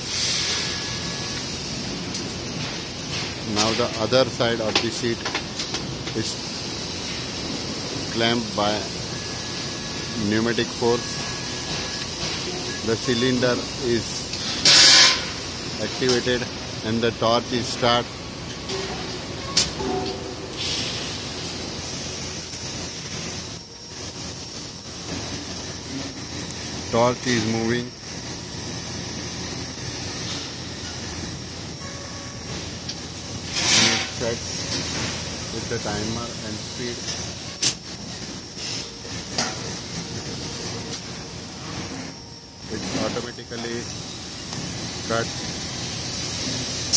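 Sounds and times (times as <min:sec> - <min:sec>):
welding arc hiss: 0:00.0 - 0:46.9.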